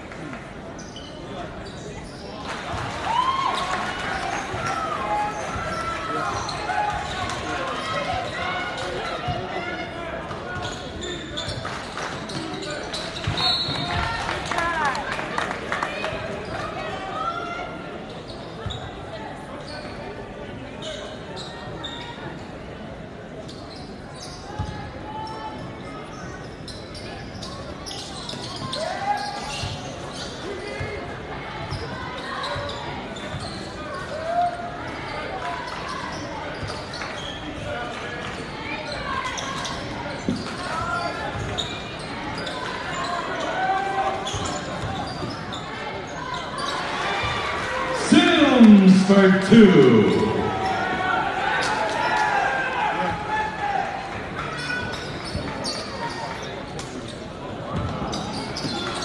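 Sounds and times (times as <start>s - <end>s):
sneakers squeaking: 0.8s - 2.4s, 10.5s - 14.2s, 18.0s - 20.0s, 20.8s - 22.5s, 23.4s - 31.0s, 31.6s - 34.2s, 35.1s - 37.7s, 38.8s - 47.4s, 48.0s - 51.9s, 54.6s - 59.0s.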